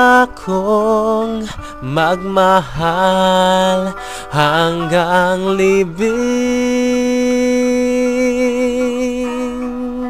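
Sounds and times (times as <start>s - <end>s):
karaoke backing track: 0.0s - 10.0s
man singing a long note: 0.0s - 10.0s.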